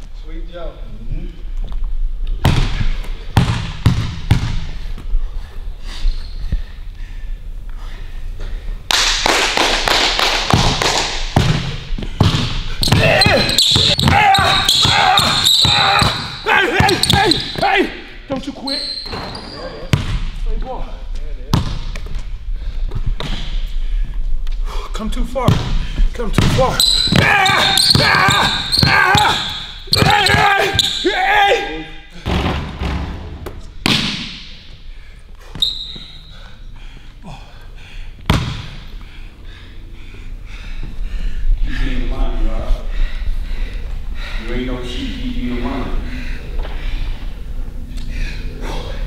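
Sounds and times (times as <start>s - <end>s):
basketball bouncing on wooden floor: 3.4s - 4.7s, 10.5s - 17.6s, 19.9s - 20.3s, 21.5s - 21.9s, 26.4s - 30.9s, 32.2s - 34.4s, 38.3s - 38.8s
short high shoe squeaks: 12.8s - 16.0s, 18.6s - 19.8s, 26.7s - 31.0s, 35.4s - 36.4s.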